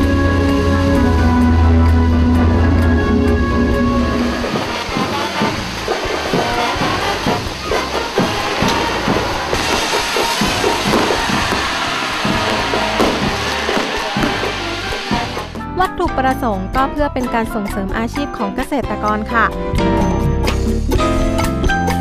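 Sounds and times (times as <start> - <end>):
background music with held tones: 0.0 - 22.0
fireworks crackling and popping: 3.7 - 15.6.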